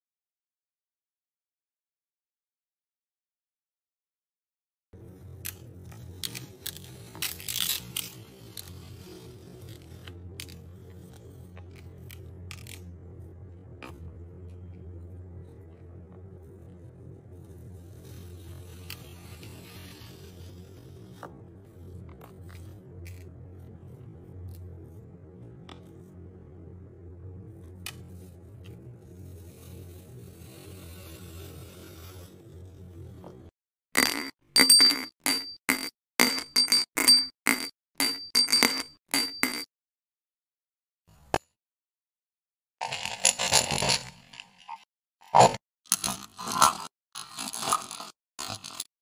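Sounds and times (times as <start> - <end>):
low steady hum: 5.0 - 33.5.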